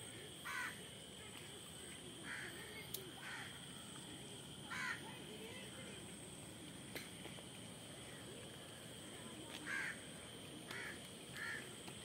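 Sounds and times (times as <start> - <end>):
bird giving harsh calls: 4.7 - 5.0.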